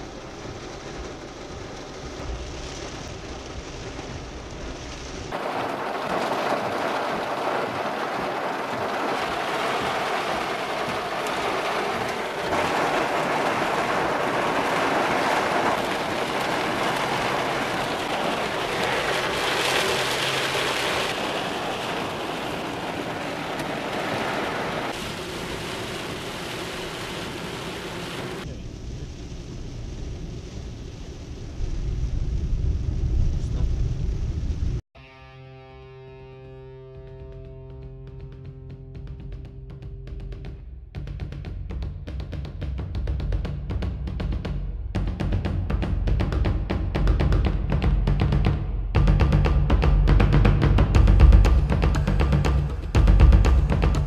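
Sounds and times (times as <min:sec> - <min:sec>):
heavy rain hiss: 0:00.0 - 0:34.8
deep thunder rumble: 0:00.5 - 0:34.8, 0:43.7 - 0:54.0.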